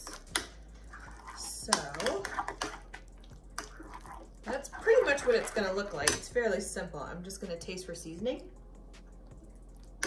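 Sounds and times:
spoon stirring thick mixture: 0.0 - 7.4, 8.6 - 10.0
woman speaking: 1.3 - 2.4, 4.5 - 8.6.

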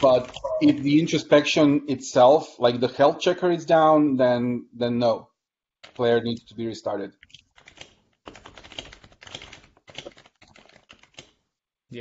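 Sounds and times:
keystrokes on computer keyboard: 7.2 - 11.4.

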